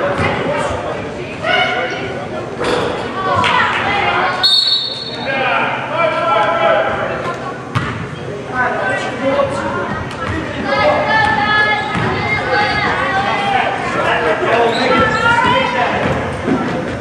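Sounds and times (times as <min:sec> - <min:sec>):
players and spectators shouting: 0:10.5 - 0:16.0.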